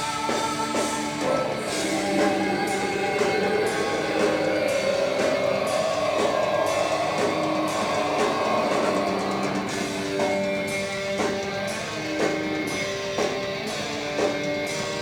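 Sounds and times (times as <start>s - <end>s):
distorted electric guitars: 0.0s - 15.0s
drum kit: 0.0s - 15.0s.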